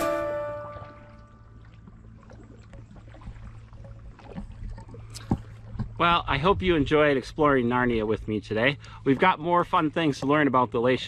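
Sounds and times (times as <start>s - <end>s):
water lapping against rock: 0.7s - 7.1s.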